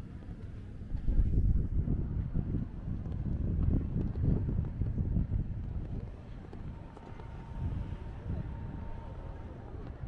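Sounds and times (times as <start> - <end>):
wind buffeting microphone: 0.8 - 10.0.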